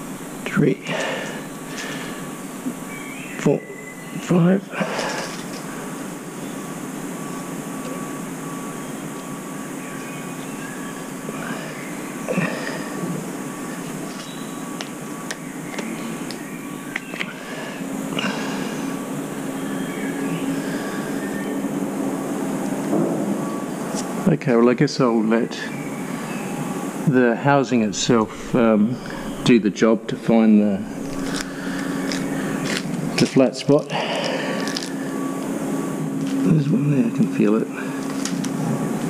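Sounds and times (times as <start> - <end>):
steady machine hum: 0.0 - 39.0.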